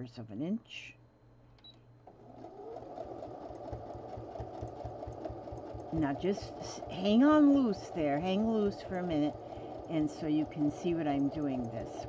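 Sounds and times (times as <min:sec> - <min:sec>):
electric sewing machine stitching: 0:02.1 - 0:12.0.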